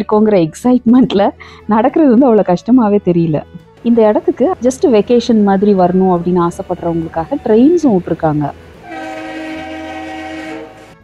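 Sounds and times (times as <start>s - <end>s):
train horn blast: 8.6s - 11.0s.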